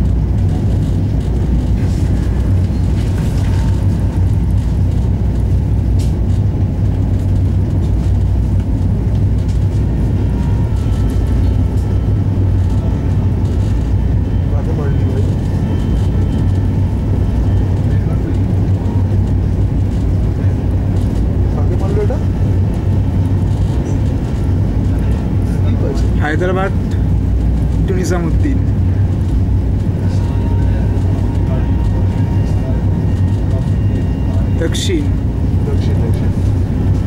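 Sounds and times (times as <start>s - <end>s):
train coach body rattling: 0.0s - 37.0s
train wheels rumbling on track: 0.0s - 37.0s.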